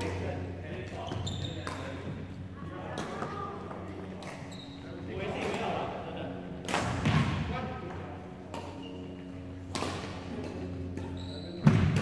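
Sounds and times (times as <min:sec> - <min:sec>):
players' voices echoing: 0:00.0 - 0:12.0
racket hitting shuttlecock: 0:01.6 - 0:02.0, 0:04.1 - 0:04.5, 0:06.6 - 0:07.5, 0:08.4 - 0:12.0.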